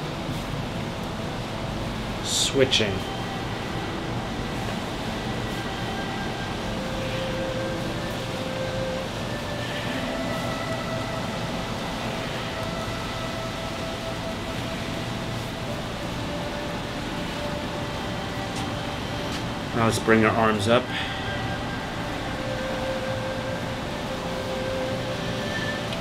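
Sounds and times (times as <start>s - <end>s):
soft slow background music: 0.0s - 26.0s
steady rushing noise: 0.0s - 26.0s.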